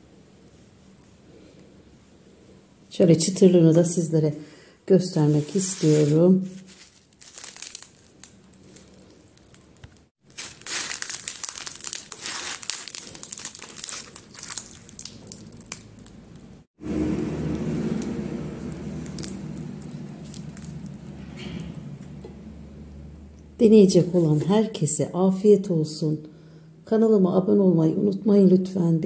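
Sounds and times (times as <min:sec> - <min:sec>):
flatbread crackling as folded: 0:05.3 - 0:16.2, 0:18.6 - 0:21.1
steady low hum: 0:16.0 - 0:24.4.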